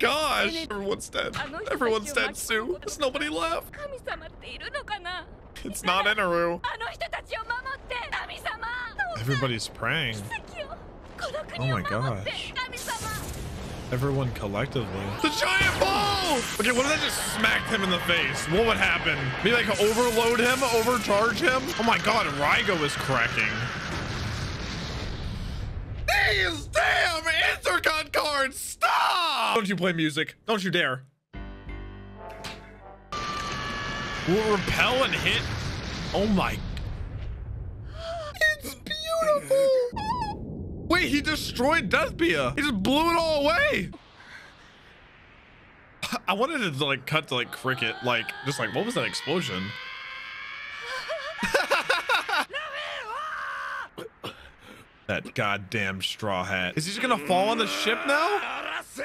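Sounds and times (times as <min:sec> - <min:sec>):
explosion rumble: 0:02.8 - 0:28.5, 0:33.2 - 0:47.7.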